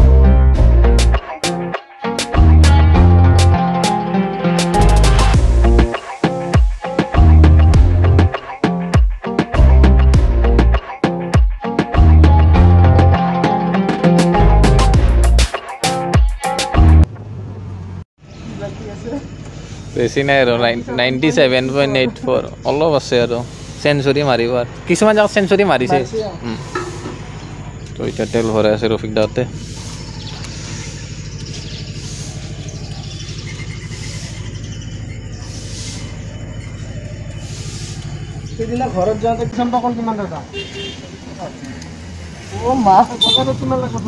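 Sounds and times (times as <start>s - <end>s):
motorcycle engine running: 17.0s - 44.0s.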